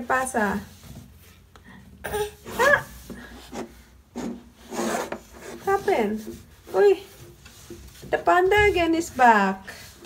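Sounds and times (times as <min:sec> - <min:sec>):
toddler shuffling rubbing sounds: 0:00.0 - 0:01.5, 0:02.1 - 0:10.0.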